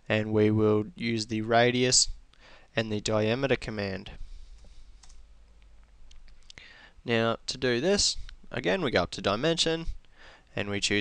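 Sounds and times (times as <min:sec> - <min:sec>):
computer mouse clicks: 0:04.6 - 0:05.2.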